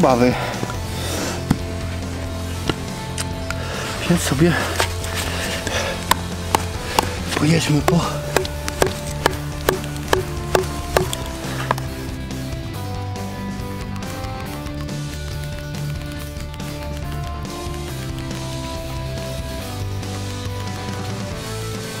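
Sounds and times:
slow background music: 0.0s - 22.0s
knife chopping a branch: 6.0s - 11.2s.

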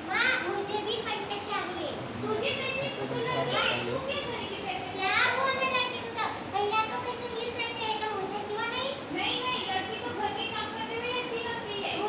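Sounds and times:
people talking over each other: 0.5s - 12.0s.

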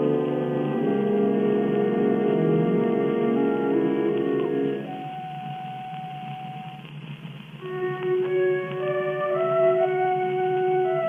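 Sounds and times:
orchestra on old recording: 0.0s - 11.0s.

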